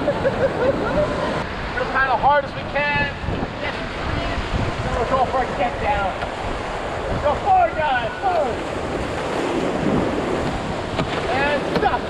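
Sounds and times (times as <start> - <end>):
whitewater rapids rushing: 0.0 - 12.0
wind noise on microphone: 0.0 - 12.0.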